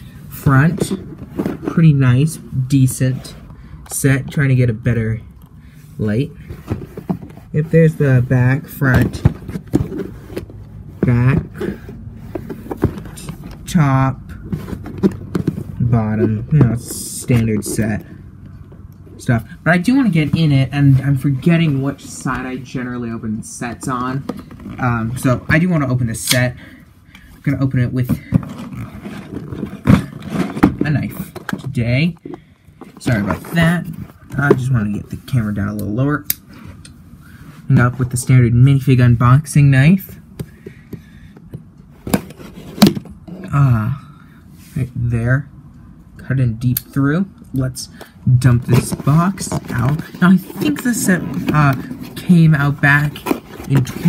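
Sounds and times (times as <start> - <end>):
handling cardboard box: 0.1 - 3.5, 6.0 - 26.0, 27.4 - 35.3, 41.9 - 43.6, 48.3 - 54.0
camera handling rumble: 14.3 - 19.1
rubbing against microphone: 28.3 - 31.6, 48.5 - 54.0.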